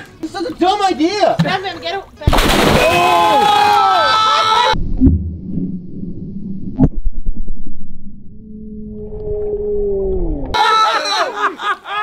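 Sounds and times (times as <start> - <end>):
sharp underwater crack: 2.3 - 3.3
low droning tone sliding down: 4.8 - 10.6
loud laughter: 10.6 - 12.0.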